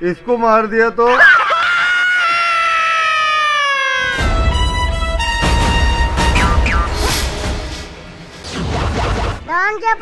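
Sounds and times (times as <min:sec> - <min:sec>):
person screaming: 0:01.1 - 0:04.3.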